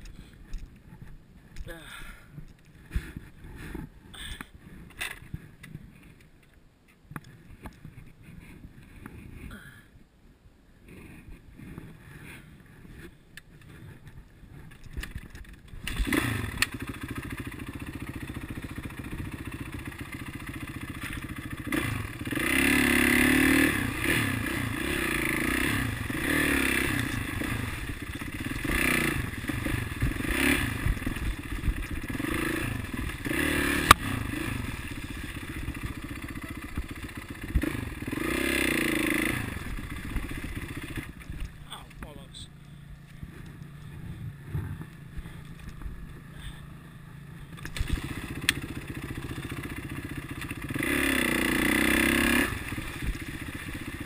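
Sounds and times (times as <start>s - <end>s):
dirt bike engine revving: 15.8s - 41.8s, 43.5s - 54.0s.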